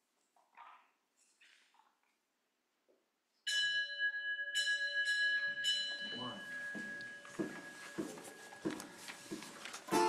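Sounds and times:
small bell ringing: 3.5s - 8.6s.

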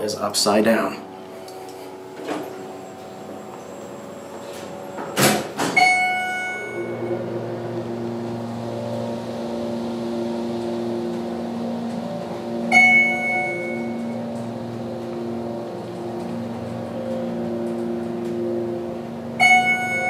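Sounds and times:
elevator hum: 0.0s - 20.0s
electronic floor chime: 0.9s - 20.0s.

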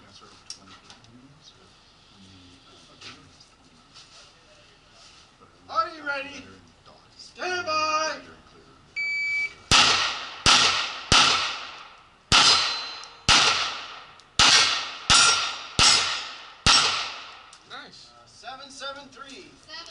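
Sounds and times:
shot timer beep: 9.0s - 9.7s
pistol shots hitting steel: 9.6s - 17.6s.

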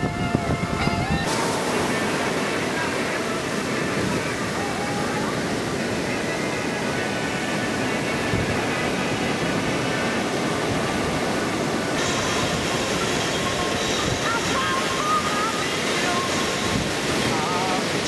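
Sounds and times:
ocean waves breaking: 0.0s - 18.0s.

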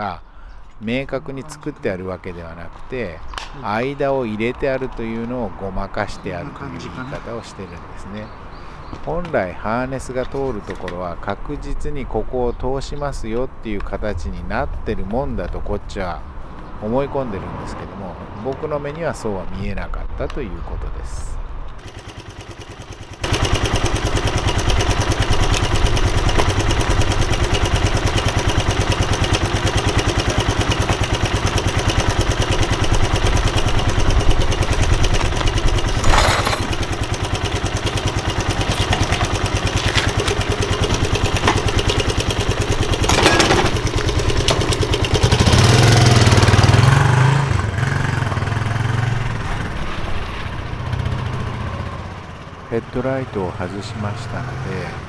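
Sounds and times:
motorcycle engine running: 21.8s - 52.7s.

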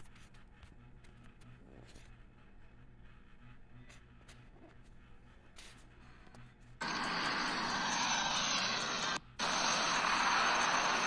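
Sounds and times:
rocket launch roar: 6.8s - 11.0s.

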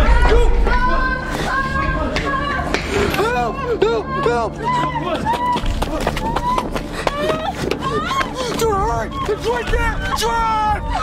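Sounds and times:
people shouting frantically: 1.5s - 11.0s.

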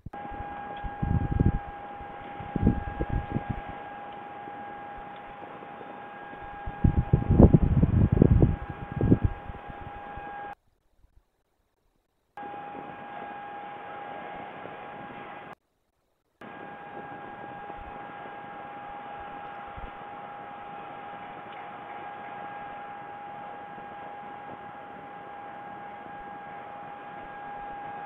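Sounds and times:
high electrical whine: 0.0s - 10.6s, 12.3s - 15.6s, 16.4s - 28.0s
low rumbling noise: 0.0s - 10.6s.

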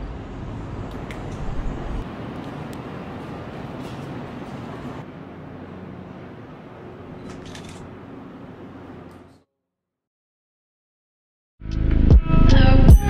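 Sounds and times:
low rumble: 0.0s - 4.0s
distant city traffic hum: 0.0s - 9.5s.

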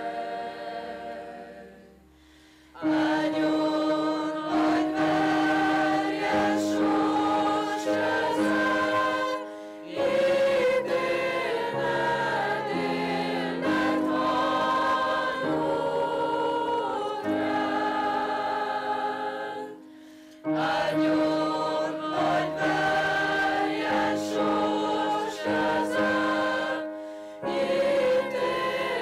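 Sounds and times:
choir singing sustained chords: 0.0s - 29.0s.

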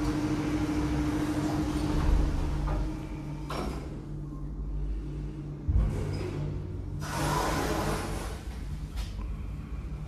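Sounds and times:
low hum: 0.0s - 7.1s.

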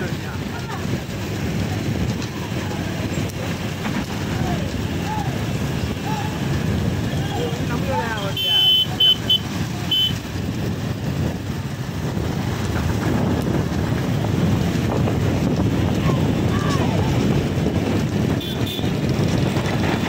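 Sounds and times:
motorcycle and scooter engines: 0.0s - 20.0s
people shouting and whooping: 4.3s - 6.5s, 16.0s - 17.2s.

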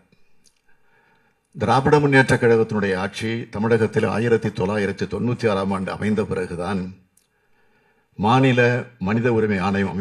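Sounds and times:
man speaking into a microphone: 1.5s - 7.1s, 8.2s - 10.0s.

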